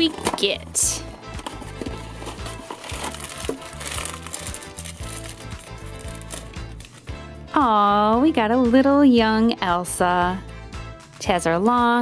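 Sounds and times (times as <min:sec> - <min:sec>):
background music with bass line: 0:00.8 - 0:12.0
cardboard box clicks and crinkles: 0:01.4 - 0:07.0
bag tearing open: 0:01.9 - 0:07.1.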